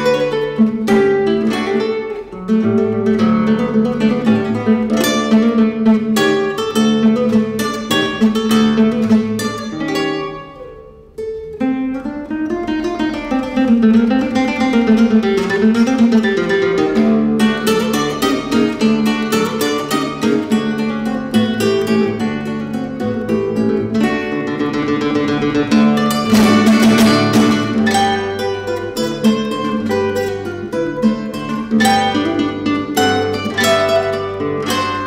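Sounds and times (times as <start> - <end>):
classical guitar playing: 0.0 - 35.0.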